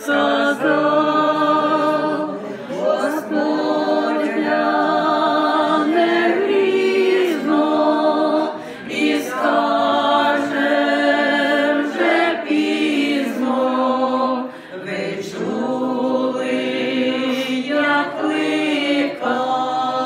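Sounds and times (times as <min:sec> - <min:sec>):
women singing a cappella: 0:00.0 - 0:20.0.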